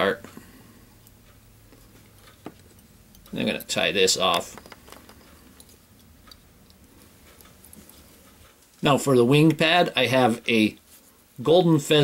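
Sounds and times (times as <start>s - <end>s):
low room hum: 0.0s - 12.0s
thread and bobbin ticking and clicking: 1.0s - 8.8s.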